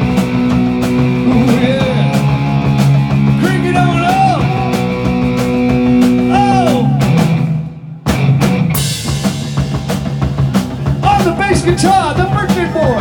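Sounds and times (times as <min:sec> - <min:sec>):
electric guitar bending notes: 0:00.0 - 0:11.0
rock band playing: 0:00.0 - 0:13.0.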